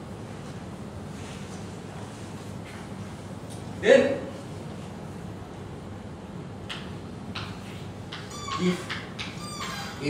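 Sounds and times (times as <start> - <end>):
chalk squeaking on blackboard: 8.1 - 10.0.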